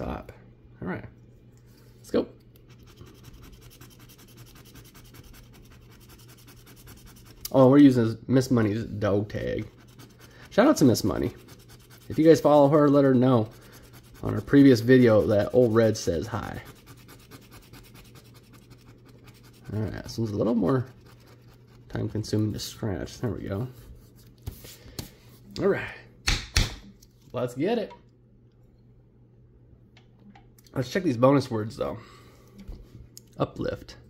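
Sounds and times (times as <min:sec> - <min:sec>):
low steady hum: 0:00.0 - 0:34.0.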